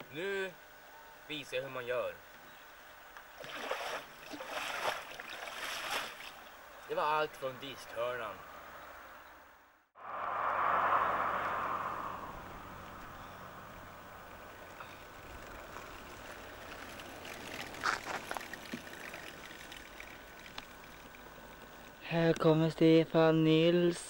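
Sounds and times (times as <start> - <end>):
vehicle rushing past: 10.0 - 15.0
faint clicks: 14.7 - 22.4.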